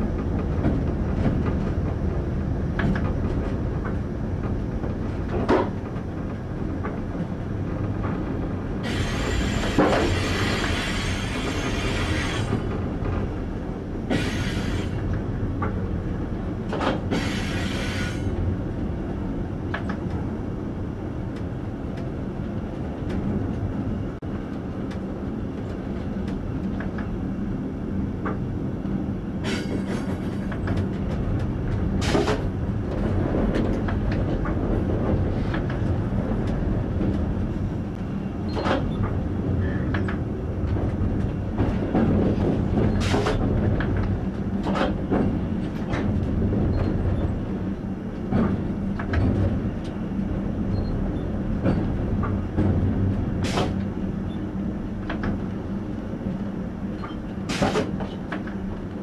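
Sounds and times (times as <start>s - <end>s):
train wheels rumbling on rail: 0.0s - 59.0s.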